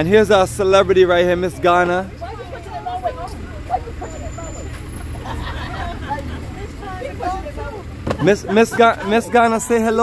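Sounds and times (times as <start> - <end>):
idling van hum: 0.0 - 10.0
people chattering: 0.0 - 10.0.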